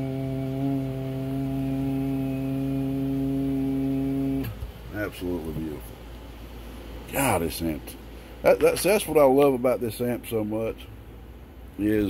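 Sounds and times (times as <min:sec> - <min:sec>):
steady low buzzing tone: 0:00.0 - 0:12.0.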